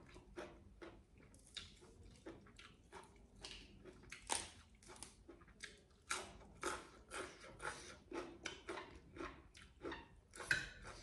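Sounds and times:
person chewing raw vegetables: 0.0 - 11.0.

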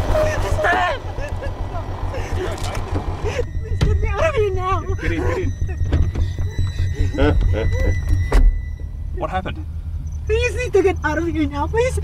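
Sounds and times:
car interior rumble while driving: 0.0 - 12.0.

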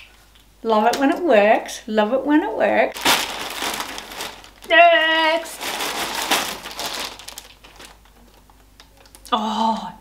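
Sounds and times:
plastic bag crinkling: 2.9 - 9.2.

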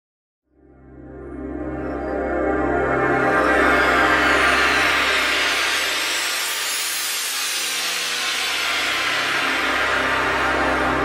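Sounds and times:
low bass drone: 0.6 - 7.5, 8.3 - 11.0.

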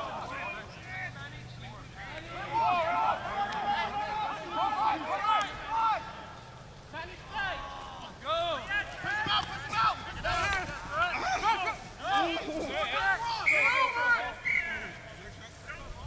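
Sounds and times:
open-air field background: 0.0 - 16.0
men shouting: 2.3 - 6.4, 7.3 - 14.9.

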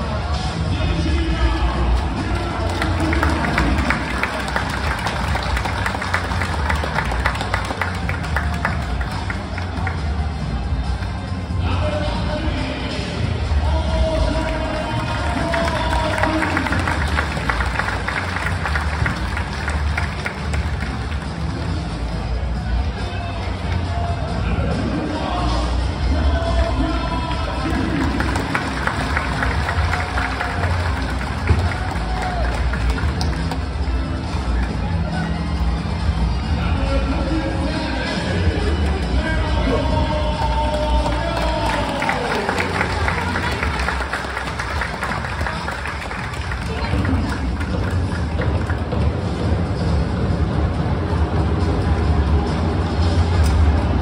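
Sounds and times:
music over public address system: 0.0 - 54.0
stadium crowd noise: 0.0 - 54.0
hand claps: 2.3 - 10.0, 14.5 - 21.6, 27.6 - 33.8, 40.4 - 49.1.

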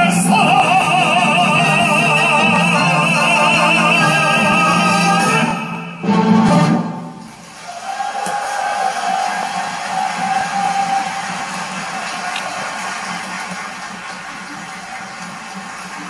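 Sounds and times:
orchestra playing softly: 0.0 - 16.0.

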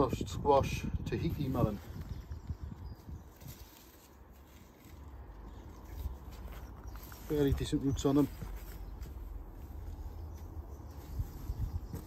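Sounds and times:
soft rustles and scrapes: 1.2 - 12.0.

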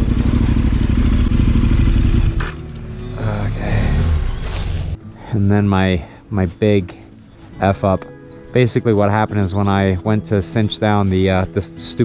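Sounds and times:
motorcycle engine low rumble: 0.0 - 5.0.

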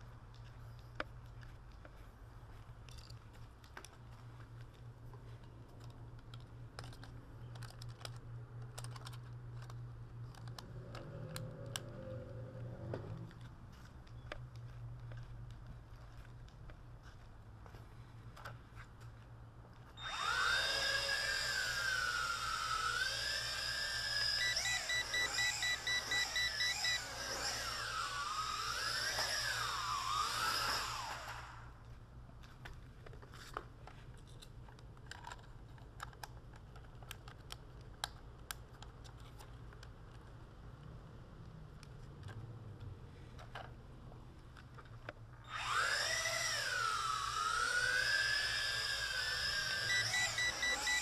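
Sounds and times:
quadcopter motors whining: 10.6 - 13.3, 20.0 - 31.8, 45.4 - 51.0
short electronic beeps: 24.4 - 27.1.

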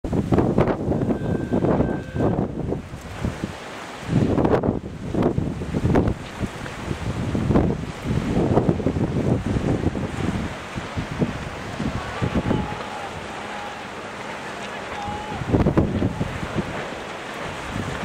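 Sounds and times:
wind on microphone: 0.0 - 18.0.

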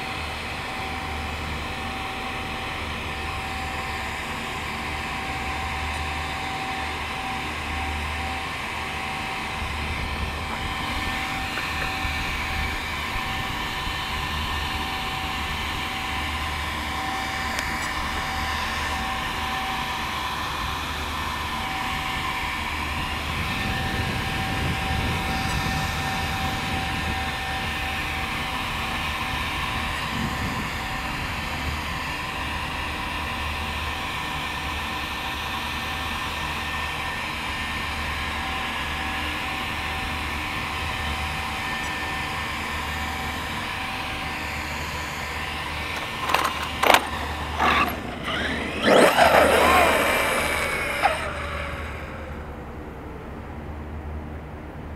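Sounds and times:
electric cooling fans whining: 0.0 - 54.9.

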